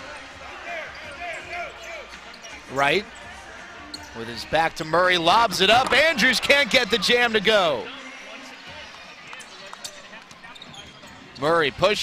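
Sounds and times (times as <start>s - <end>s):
sneaker squeaks: 0.8s - 4.3s, 9.3s - 11.6s.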